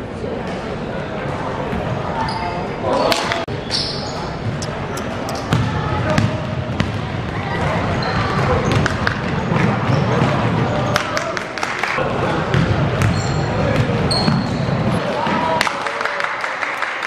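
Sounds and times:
sneaker squeaks: 0:01.7 - 0:09.1, 0:09.8 - 0:11.2, 0:13.0 - 0:15.0
basketball bouncing on wooden court: 0:04.4 - 0:10.7, 0:12.5 - 0:15.0.

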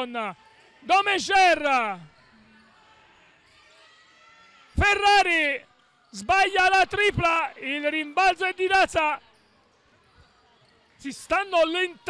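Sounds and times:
arena ambience: 0:00.0 - 0:03.5, 0:04.8 - 0:12.0.

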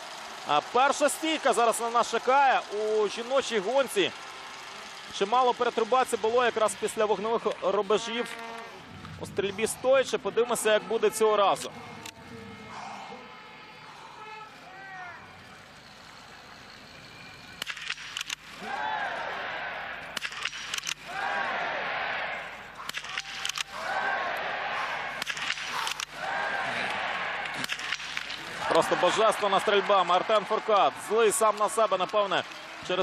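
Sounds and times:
spectators cheering: 0:00.0 - 0:17.4, 0:18.5 - 0:33.0.

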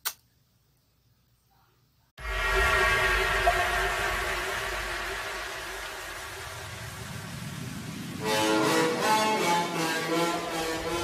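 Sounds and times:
deep low rumble: 0:02.2 - 0:08.8
sustained chord: 0:02.2 - 0:11.0.

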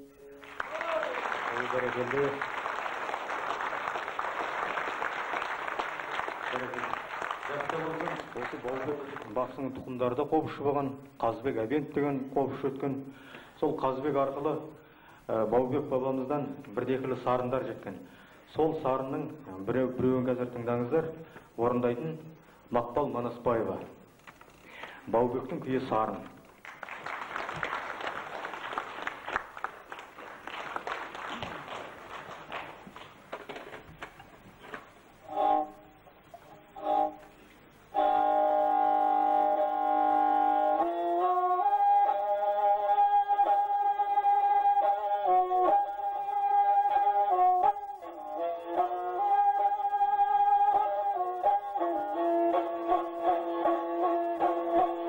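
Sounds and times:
audience applause: 0:00.4 - 0:09.6, 0:26.5 - 0:34.8
bowed string instrument: 0:34.6 - 0:55.0.

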